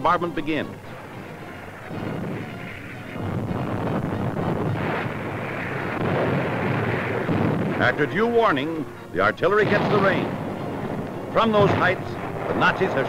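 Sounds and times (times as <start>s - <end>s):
distant artillery fire: 0.7s - 13.0s.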